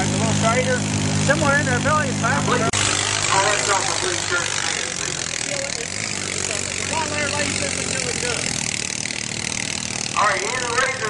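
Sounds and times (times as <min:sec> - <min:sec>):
people talking: 0:00.0 - 0:08.6, 0:10.1 - 0:11.0
atv engine idling: 0:00.0 - 0:11.0
crowd noise: 0:01.4 - 0:11.0.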